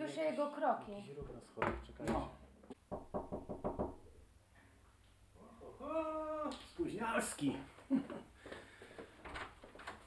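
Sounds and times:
faint footsteps: 0:07.7 - 0:09.8.

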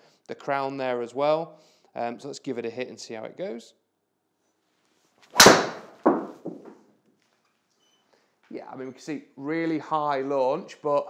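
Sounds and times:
golf club striking ball: 0:05.4 - 0:06.6.

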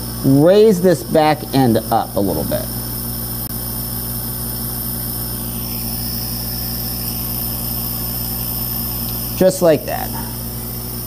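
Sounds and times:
faint high whine: 0:00.0 - 0:11.0
machine hum: 0:00.0 - 0:11.0.

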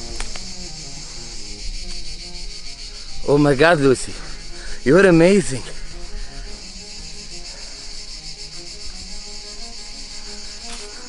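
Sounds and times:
insect chorus: 0:00.0 - 0:11.0
quiet background music: 0:00.0 - 0:11.0.

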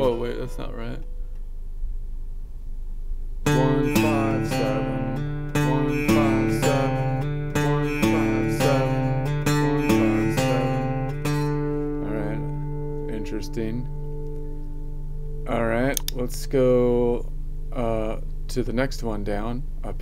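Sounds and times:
acoustic guitar picked notes: 0:00.0 - 0:01.5, 0:03.4 - 0:19.4.

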